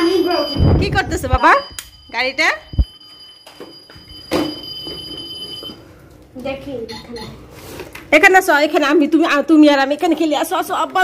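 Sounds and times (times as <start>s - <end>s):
high-pitched electronic tone: 0.0s - 2.9s.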